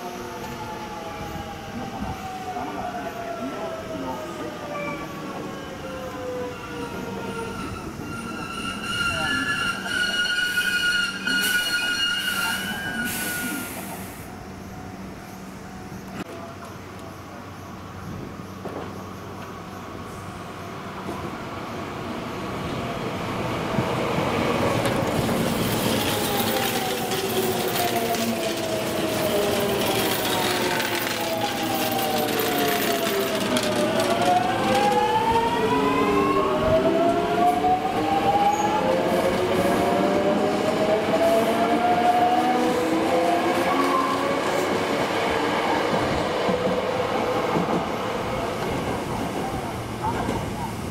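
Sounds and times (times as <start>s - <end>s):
train accelerating: 0.0s - 50.9s.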